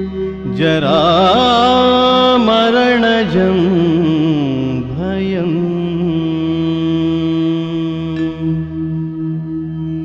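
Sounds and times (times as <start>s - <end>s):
sustained musical drone: 0.0s - 10.0s
person singing: 0.4s - 8.6s.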